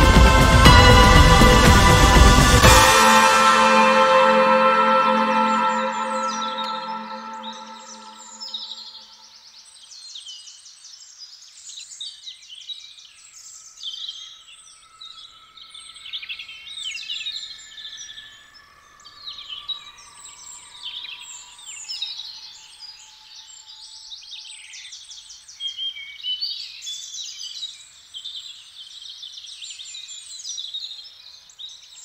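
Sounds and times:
downtempo music chord: 0.0s - 8.7s.

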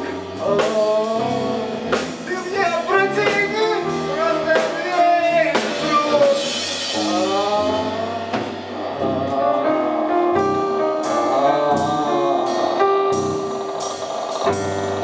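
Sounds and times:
person singing into a microphone: 0.0s - 13.5s
bass guitar: 0.0s - 15.0s
drum kit: 0.0s - 15.0s
keyboard: 0.0s - 15.0s.

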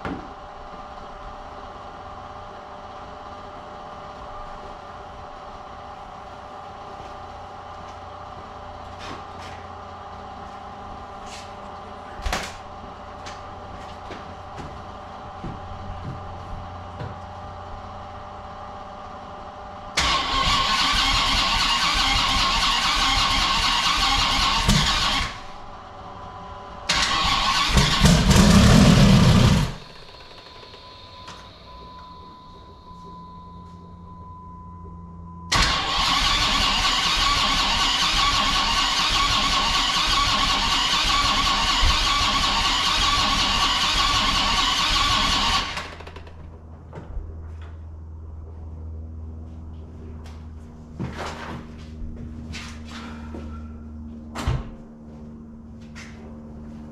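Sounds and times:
engine cranking on starter: 20.0s - 25.6s, 26.9s - 31.5s, 35.5s - 46.4s
low hum: 24.6s - 36.8s, 45.6s - 56.9s
faint high tone: 30.9s - 35.5s.

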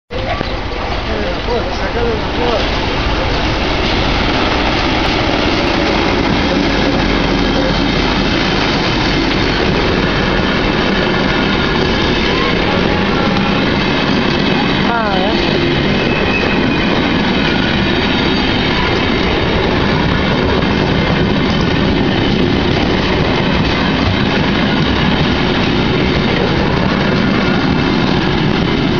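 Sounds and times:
diesel locomotive running: 0.1s - 28.9s
train coaches rumbling over rails: 0.1s - 28.9s.

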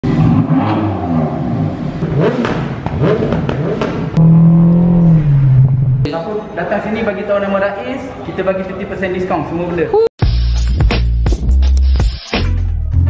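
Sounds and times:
car engine revving: 0.0s - 6.1s.

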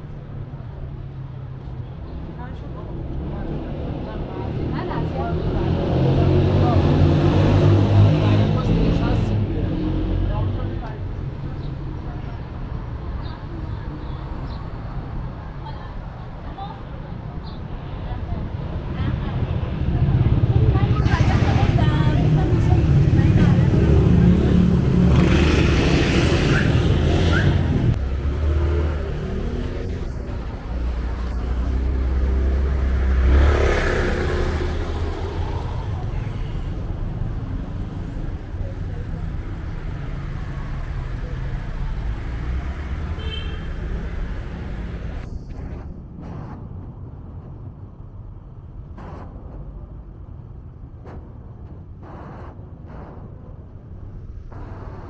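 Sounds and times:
traffic hum: 0.0s - 55.0s
vehicles passing close: 0.0s - 55.0s.

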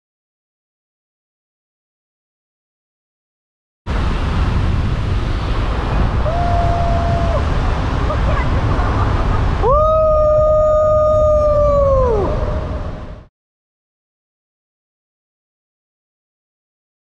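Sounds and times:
car road and engine noise: 3.9s - 6.4s
person calling hoo: 9.6s - 12.7s.

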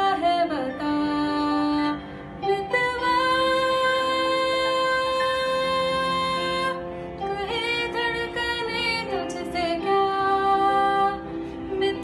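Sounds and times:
young woman singing: 0.0s - 12.0s.

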